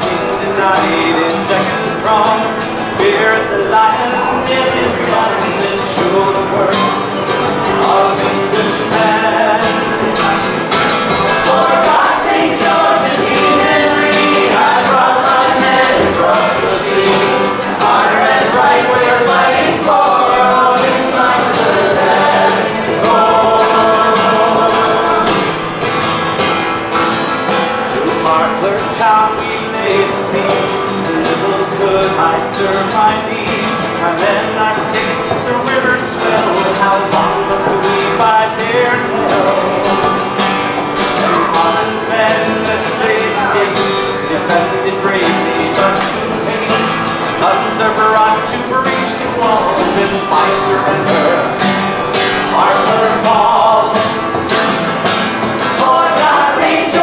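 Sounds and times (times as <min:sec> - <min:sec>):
person singing: 0:00.0 - 0:25.7, 0:27.8 - 0:40.4, 0:41.0 - 0:51.8, 0:52.4 - 0:54.4, 0:55.7 - 0:57.0
acoustic guitar strumming: 0:00.0 - 0:57.0.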